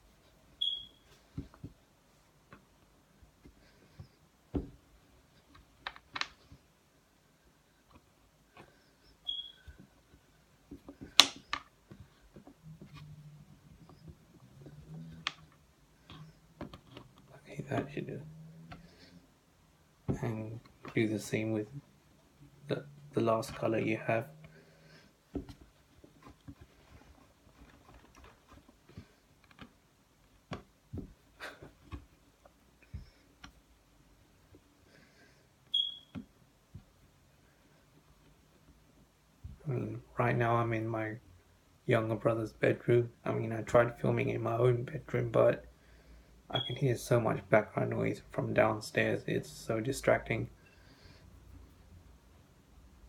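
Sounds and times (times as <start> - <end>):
hands rolling clay on a table: 0.0 - 6.8, 7.5 - 21.0, 21.7 - 34.9.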